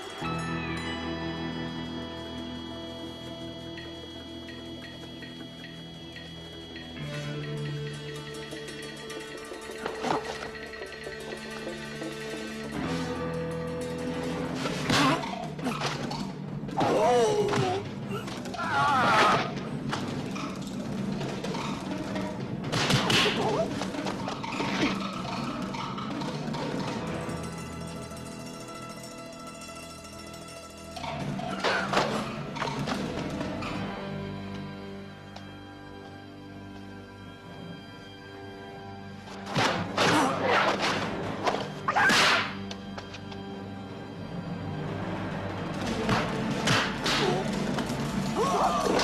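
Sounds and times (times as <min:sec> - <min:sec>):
background music: 0:00.0 - 0:49.0.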